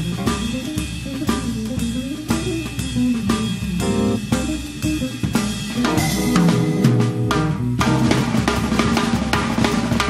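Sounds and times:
electric bass notes: 0.0s - 8.8s
jazz band playing: 0.0s - 10.0s
snare and bass drum strokes: 0.0s - 10.0s.

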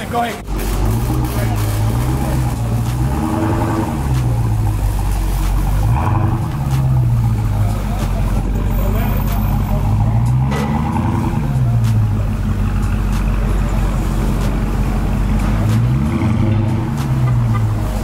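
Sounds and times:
car engine revving: 0.0s - 18.0s.

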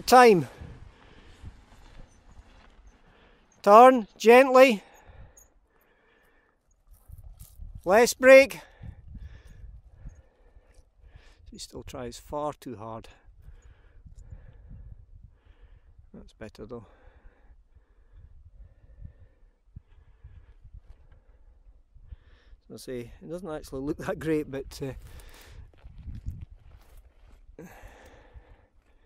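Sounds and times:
wind rumble on microphone: 0.5s - 3.0s, 5.0s - 5.4s, 6.9s - 7.9s, 8.7s - 12.2s, 13.2s - 16.2s, 17.2s - 22.6s, 23.9s - 27.6s.

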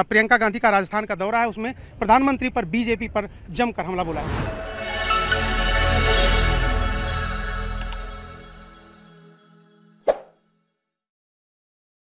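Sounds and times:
outro music: 4.1s - 10.0s
short pop sound effect: 10.1s - 10.3s.

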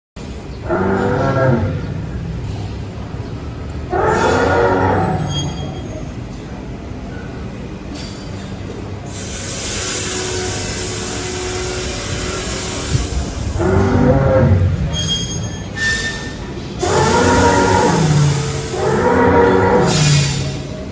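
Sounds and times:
mammoth bellow: 16.8s - 20.5s.

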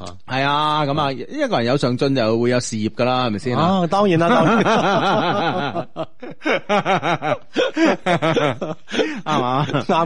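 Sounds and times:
people laughing: 4.2s - 10.0s.

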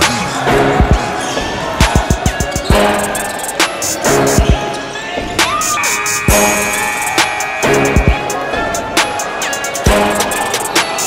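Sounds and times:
music with deep bass beat: 0.0s - 1.1s, 1.8s - 4.8s, 5.4s - 11.0s.

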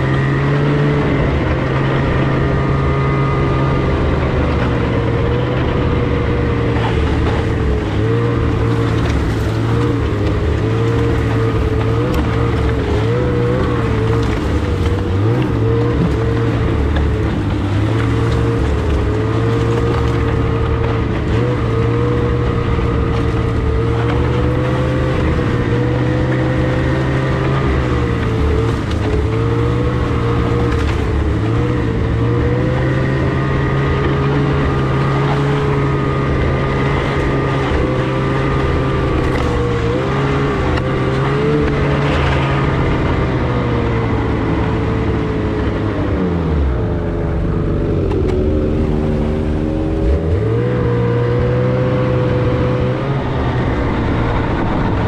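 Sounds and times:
snowmobile engine running: 0.0s - 55.0s.

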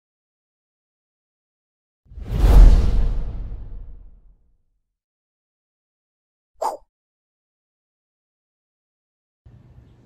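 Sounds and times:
whoosh sound effect: 2.1s - 4.3s
deep bass boom: 2.2s - 4.2s.

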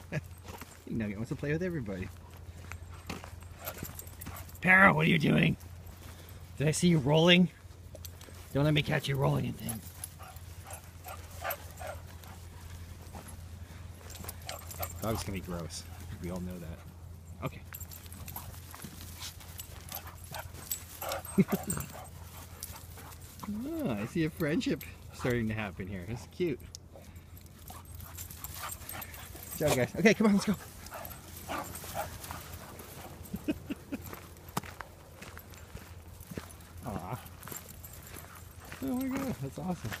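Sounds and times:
dogs scuffling in grass: 0.0s - 17.2s, 17.8s - 25.8s, 27.5s - 40.0s
dogs breathing: 2.0s - 4.6s, 5.6s - 6.6s, 9.4s - 40.0s.

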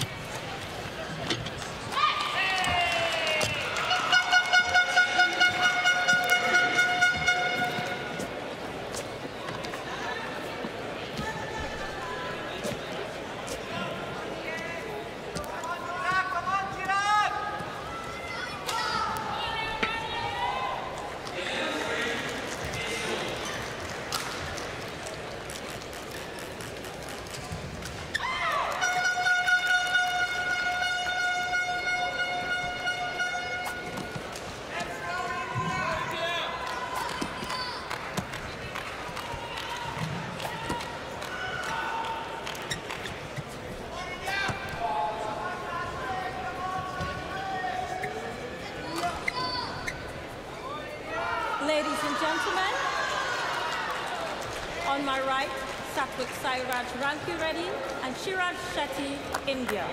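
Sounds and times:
long horn-like tone: 4.0s - 8.2s, 28.8s - 33.9s.

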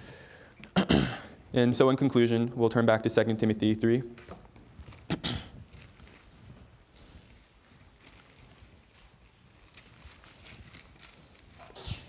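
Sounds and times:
thin pages flicking: 4.2s - 12.0s.

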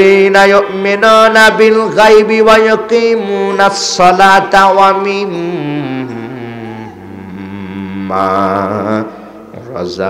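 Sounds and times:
man reciting in long low note: 0.0s - 10.0s.

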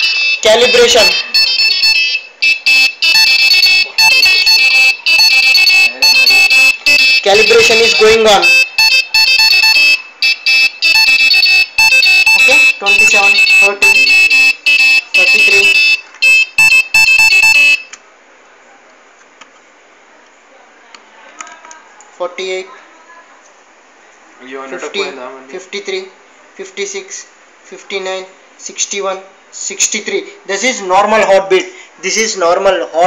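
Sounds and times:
electronic alarm beeping melody: 0.0s - 18.0s.

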